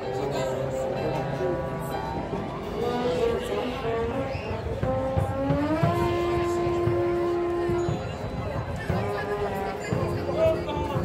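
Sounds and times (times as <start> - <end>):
marching band playing: 0.0 - 11.0
low drum hits: 4.6 - 11.0.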